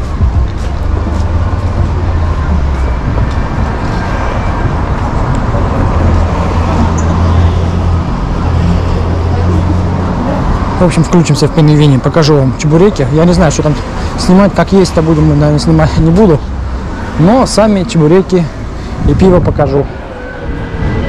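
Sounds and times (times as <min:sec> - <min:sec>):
road noise: 0:00.0 - 0:21.0.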